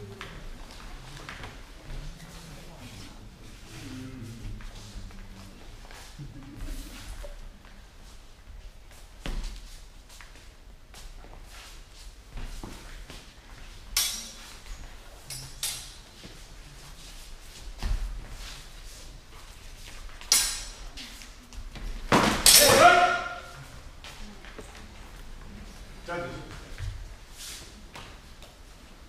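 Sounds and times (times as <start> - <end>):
steel swords clashing: 14.0 - 14.5, 20.3 - 20.8, 22.4 - 23.6
loud drawn-out shout: 22.5 - 23.7.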